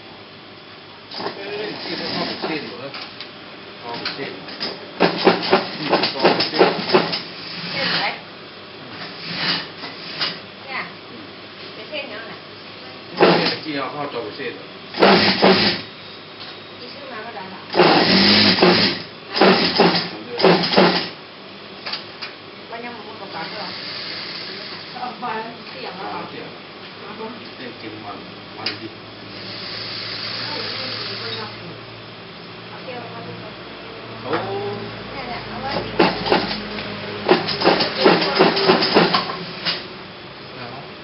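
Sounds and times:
sewing machine motor hum: 1.4 - 2.6, 9.0 - 10.3, 13.2 - 13.6, 15.0 - 15.9, 17.7 - 21.2, 23.3 - 25.1, 29.3 - 31.5, 35.7 - 39.8
sewing machine rattle: 15.0 - 15.8, 17.8 - 21.1, 37.3 - 39.3.

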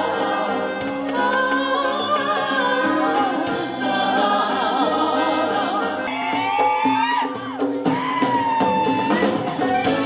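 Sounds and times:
backing voices singing: 0.0 - 7.0
accompanying music: 0.0 - 10.0
woman singing with vibrato: 1.1 - 7.1.

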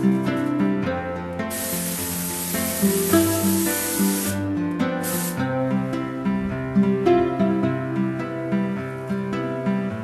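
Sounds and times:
acoustic guitar music: 0.0 - 10.0
cooking spray hissing: 1.5 - 4.4, 5.0 - 5.5.

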